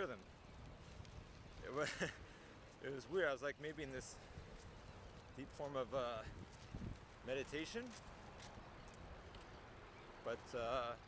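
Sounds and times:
faint clicks: 7.9s - 9.6s.

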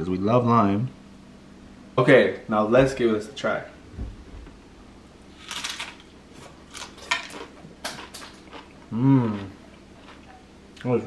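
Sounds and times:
crunchy tostada being chewed: 5.4s - 10.9s.

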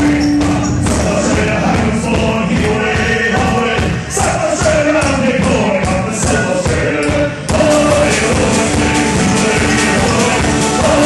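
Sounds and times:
rock band playing live: 0.0s - 11.0s
voices singing: 0.0s - 11.0s.

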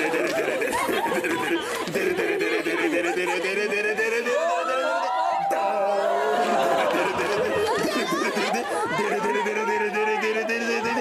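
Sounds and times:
overlapping chatter of voices: 0.0s - 11.0s
people laughing: 0.0s - 11.0s.

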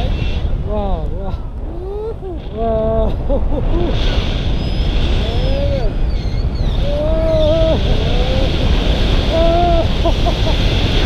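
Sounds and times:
person giving wordless calls: 0.0s - 3.3s, 5.2s - 6.0s, 6.8s - 8.7s, 9.3s - 10.0s
wind buffeting microphone: 0.0s - 11.0s.

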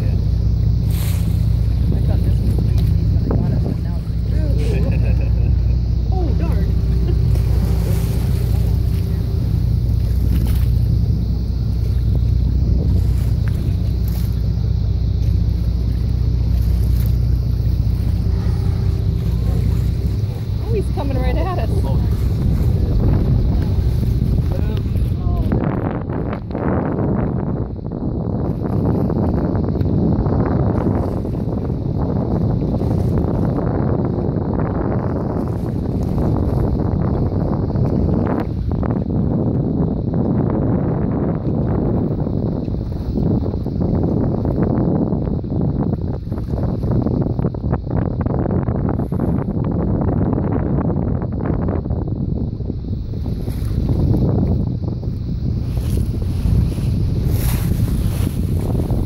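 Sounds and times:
sea wash: 0.0s - 59.0s
wind buffeting microphone: 0.0s - 59.0s.

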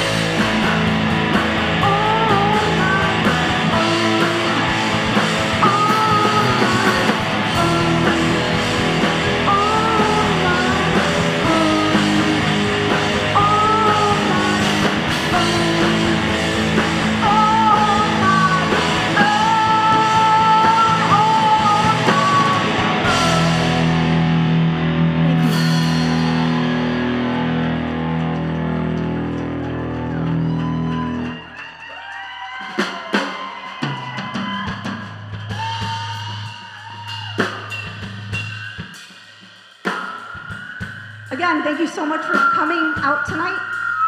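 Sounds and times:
live rock band playing: 0.0s - 44.0s
drum and cymbal hits: 32.5s - 43.6s.

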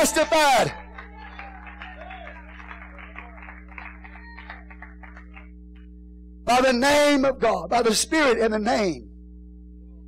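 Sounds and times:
congregation murmuring: 0.0s - 5.4s
steady low hum: 0.0s - 10.0s.

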